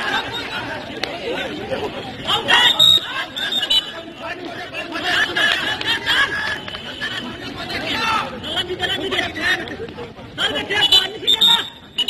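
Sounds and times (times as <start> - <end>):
players and spectators chattering: 0.0 - 12.0.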